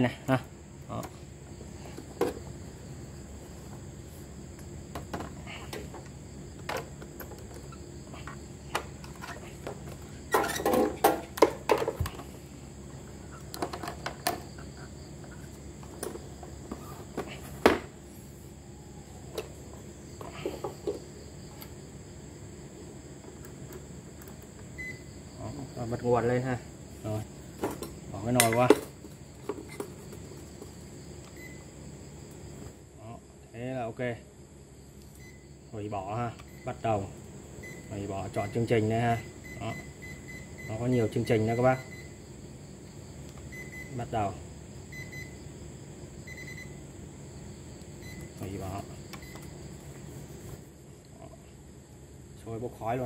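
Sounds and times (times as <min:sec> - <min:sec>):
plastic cooktop knocks and clatters: 0:09.7 - 0:12.2.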